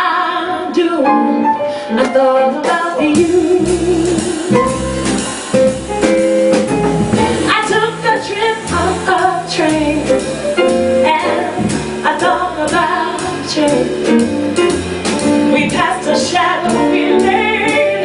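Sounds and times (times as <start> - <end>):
woman singing jazz: 0.0 - 6.1, 6.8 - 18.0
drum kit: 2.0 - 18.0
walking upright bass: 3.0 - 18.0.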